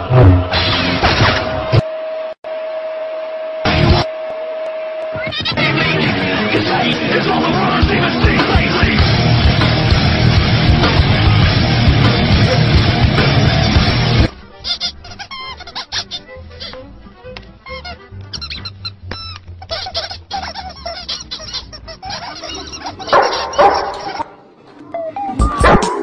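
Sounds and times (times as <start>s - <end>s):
loud background music: 6.1s - 14.3s
cartoon birds chirping: 14.6s - 16.7s, 17.7s - 24.4s
cartoon birds squawking: 14.6s - 16.8s, 17.6s - 24.4s.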